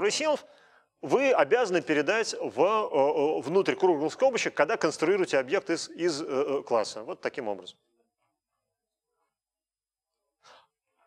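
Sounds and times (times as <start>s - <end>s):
faint breath: 0.5s - 1.0s, 10.4s - 10.8s.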